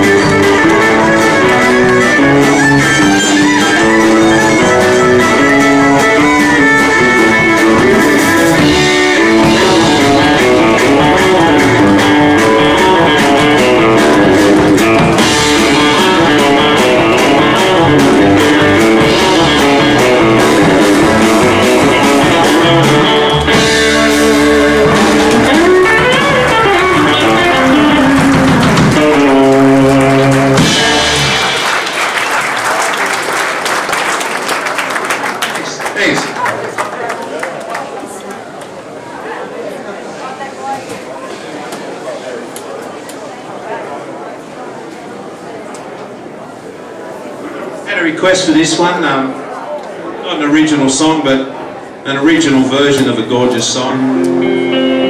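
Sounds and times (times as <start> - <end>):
country band playing: 0.0 - 36.6, 50.3 - 55.0
people clapping: 25.2 - 38.8.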